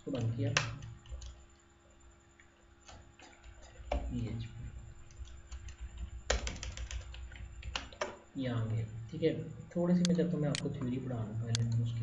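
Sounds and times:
keyboard typing: 0.1s - 1.5s, 5.0s - 8.2s.

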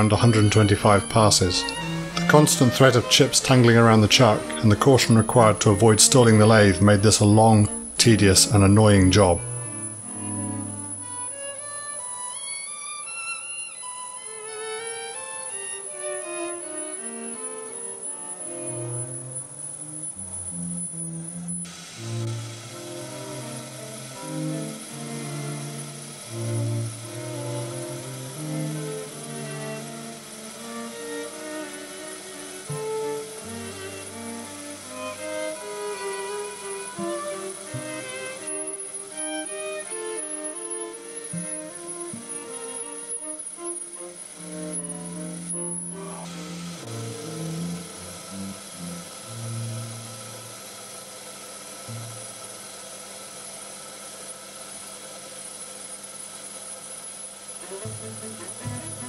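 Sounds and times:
string trio playing classical music: 0.0s - 50.7s, 51.9s - 52.3s, 57.6s - 59.0s.

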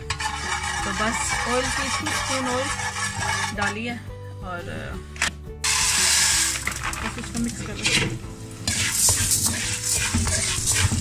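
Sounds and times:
music: 0.0s - 11.0s
popcorn kernels poured into wok: 5.6s - 7.6s, 8.7s - 11.0s.

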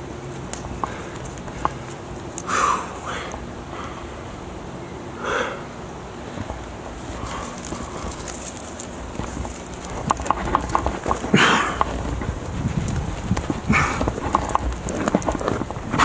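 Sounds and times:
hands and shoes tapping on rock: 0.0s - 3.4s, 6.4s - 16.0s
rubbing on rock: 6.4s - 16.0s.

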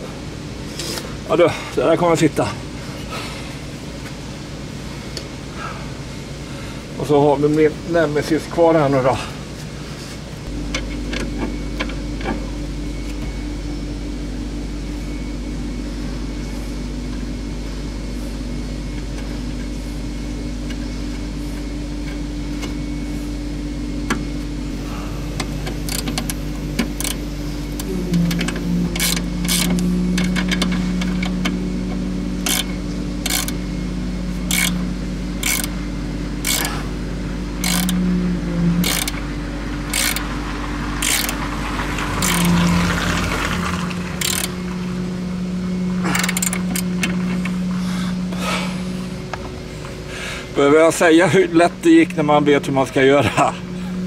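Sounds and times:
steady low hum: 0.0s - 54.0s
ratchet wrench clicking: 25.8s - 27.2s, 27.8s - 31.3s, 32.4s - 33.6s, 34.4s - 34.8s, 35.4s - 35.8s, 36.4s - 36.8s, 37.6s - 38.0s, 38.8s - 39.2s, 39.9s - 40.3s, 41.0s - 41.4s, 42.2s - 42.6s, 44.2s - 44.6s, 46.1s - 47.2s.

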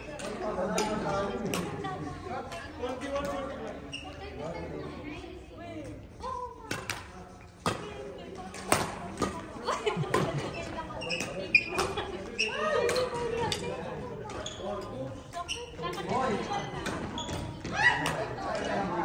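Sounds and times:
racket striking shuttlecock: 18.0s - 18.2s.

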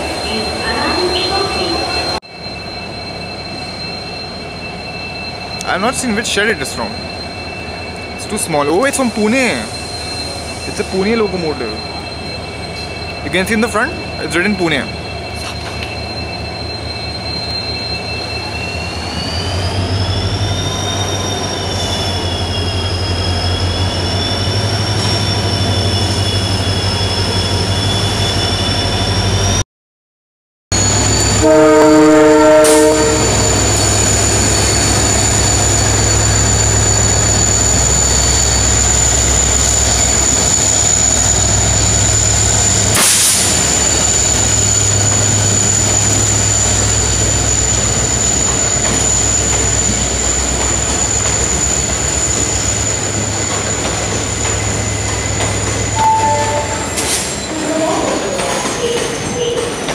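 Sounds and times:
locomotive engine droning: 0.0s - 29.6s, 30.8s - 59.9s
train horn blast: 31.3s - 33.5s, 56.0s - 57.0s.

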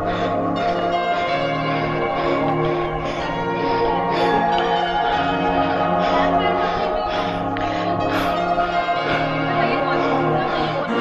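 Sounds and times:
bell-like background music: 0.0s - 11.0s.

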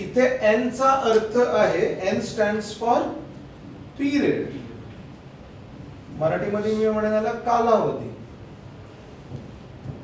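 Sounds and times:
low room rumble and hiss: 0.0s - 10.0s.

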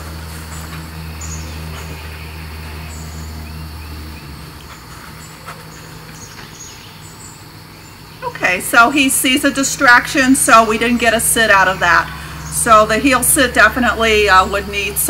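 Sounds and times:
insects: 0.0s - 15.0s
steady low hum: 0.0s - 15.0s
bird chirps: 0.4s - 8.2s.

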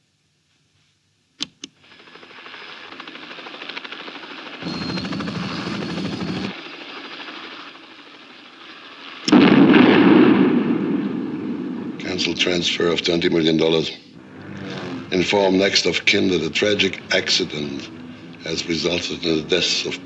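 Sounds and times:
helicopter rotor chop: 1.8s - 8.4s, 11.7s - 20.0s
loud explosion: 9.3s - 12.0s.

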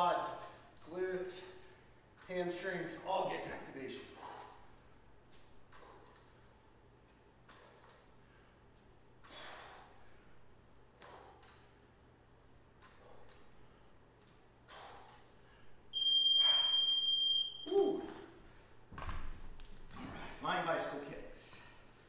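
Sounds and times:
interval timer long high beep: 16.0s - 17.7s.

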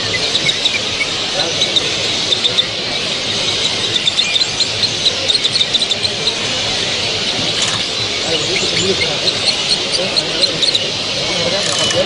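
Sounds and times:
hall background noise: 0.0s - 12.0s
small birds chirping: 0.0s - 12.0s.

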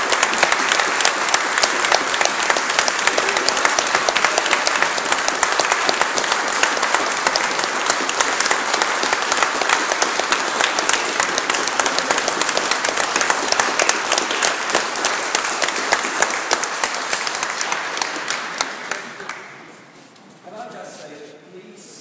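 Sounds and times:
audience applauding: 0.0s - 19.8s.

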